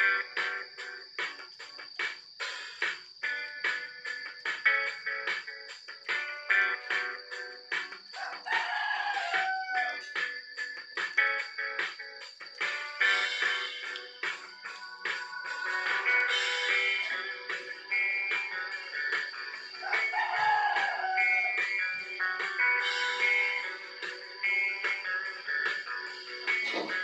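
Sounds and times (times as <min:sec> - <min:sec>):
rooster crowing: 0:08.1 - 0:10.2, 0:19.7 - 0:22.0
music through small loudspeaker: 0:12.7 - 0:27.0.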